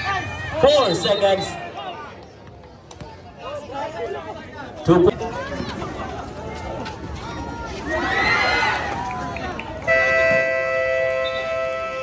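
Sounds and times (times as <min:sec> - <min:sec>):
crowd yelling: 0:06.6 - 0:12.0.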